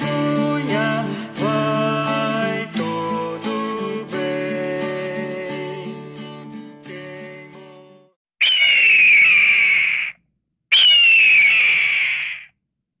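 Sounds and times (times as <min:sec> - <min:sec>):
acoustic guitar music: 0:00.0 - 0:08.1
bird of prey screaming: 0:08.4 - 0:12.6.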